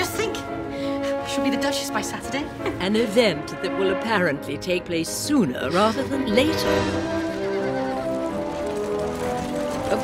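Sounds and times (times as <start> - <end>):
horse whinnying: 6.6 - 10.0
hooves clip-clopping: 7.0 - 10.0.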